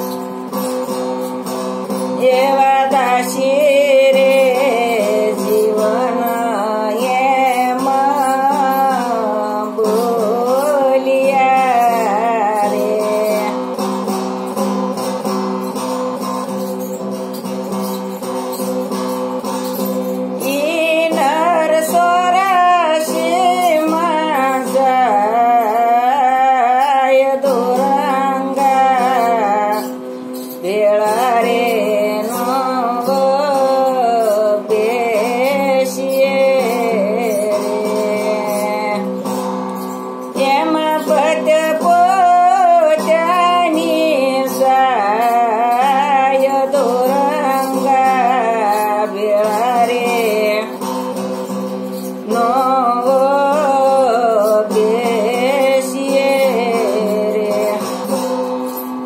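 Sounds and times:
plucked tambura drone: 0.0s - 59.0s
woman singing: 0.0s - 59.0s.

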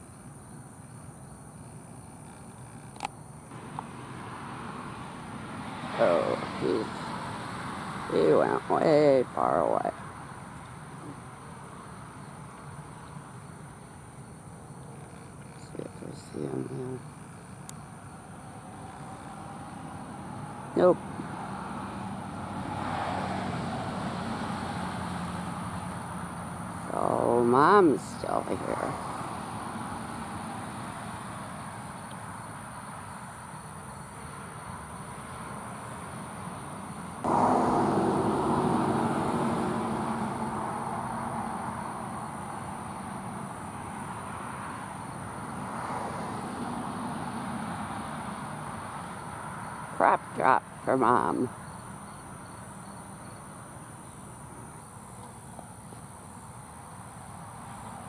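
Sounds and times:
high-pitched insect trill: 0.0s - 50.0s, 50.6s - 58.0s
vehicle passing: 3.5s - 14.0s, 15.9s - 53.4s.

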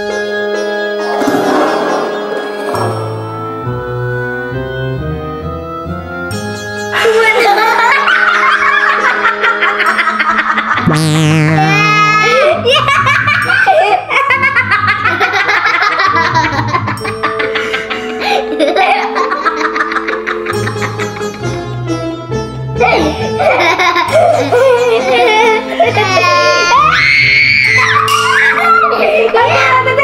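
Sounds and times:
background music: 0.0s - 30.0s
girls giggling: 6.9s - 11.2s, 12.0s - 21.9s, 22.8s - 27.0s, 27.8s - 29.9s
girl screaming: 26.0s - 29.8s.

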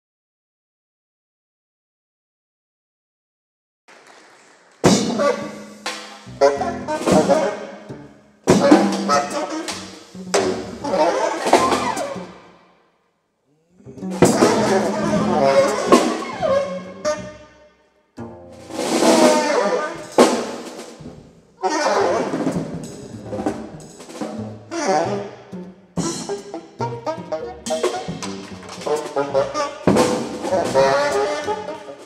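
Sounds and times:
drum kit: 4.8s - 12.5s, 14.0s - 17.2s, 18.2s - 25.3s, 25.9s - 32.0s
alto saxophone: 4.9s - 12.5s, 13.7s - 17.7s, 18.5s - 20.5s, 21.6s - 32.0s
double bass: 4.9s - 12.5s, 13.8s - 17.5s, 18.2s - 32.0s.

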